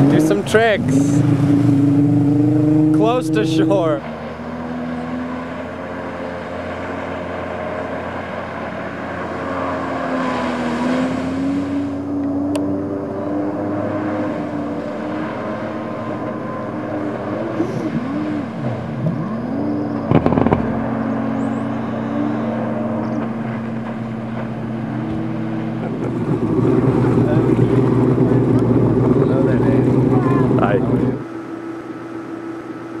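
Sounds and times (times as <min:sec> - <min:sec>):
jet ski engine revving: 0:00.0 - 0:33.0.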